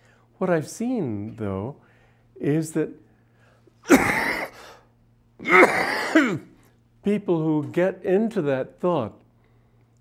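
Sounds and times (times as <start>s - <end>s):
man coughing: 3.8s - 4.7s, 5.4s - 6.6s.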